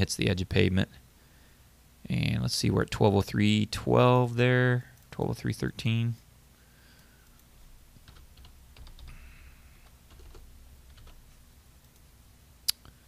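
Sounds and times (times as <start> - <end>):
faint keyboard typing: 6.9 - 12.1.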